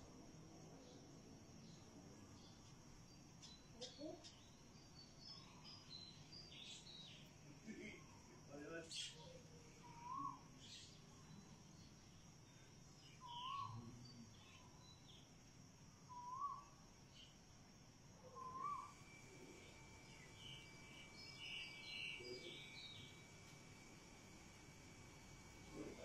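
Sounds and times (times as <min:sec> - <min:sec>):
bird call rising and falling: 0:18.3 - 0:19.0.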